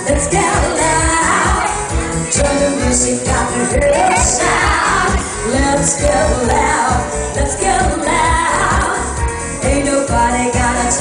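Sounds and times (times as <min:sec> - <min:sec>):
live pop band: 0:00.0 - 0:11.0
person singing: 0:00.0 - 0:11.0.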